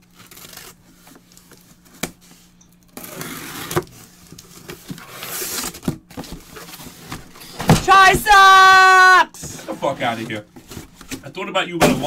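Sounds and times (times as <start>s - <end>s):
cardboard scraping and rustling: 3.0s - 8.5s, 9.4s - 11.3s.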